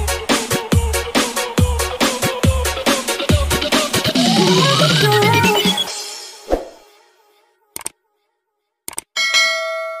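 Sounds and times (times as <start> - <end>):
bell ding: 9.2 - 10.0.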